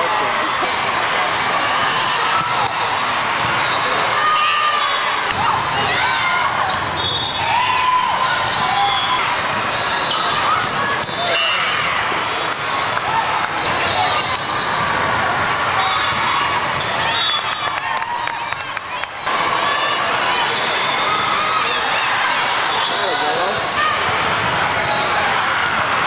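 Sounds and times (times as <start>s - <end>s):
hum of crowd voices: 0.0s - 26.0s.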